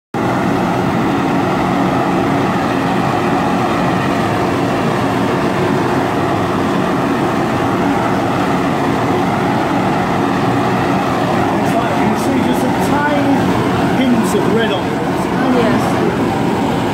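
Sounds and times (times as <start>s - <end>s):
blowtorch flame rushing: 0.2s - 16.9s.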